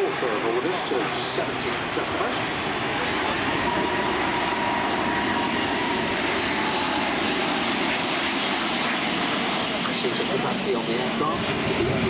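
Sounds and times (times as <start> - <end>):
jet airliner overhead: 0.0 - 12.0.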